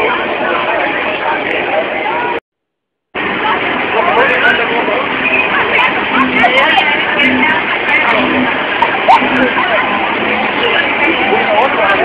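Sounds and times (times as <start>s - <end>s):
crowd talking: 0.0s - 2.4s, 3.2s - 12.0s.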